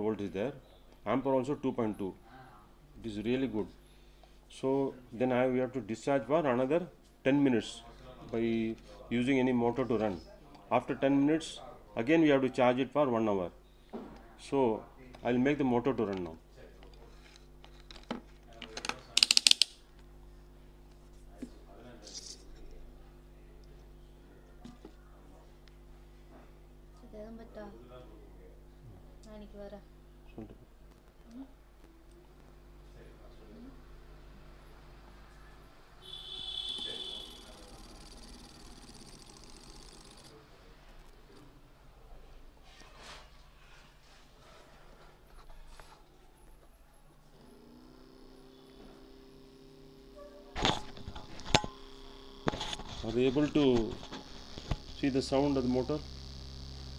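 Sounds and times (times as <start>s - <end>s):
wire handling clicks: 18.6s - 19.8s
small motor whining: 36.0s - 40.4s, 47.2s - 56.9s
steady low hum: 43.6s - 56.9s.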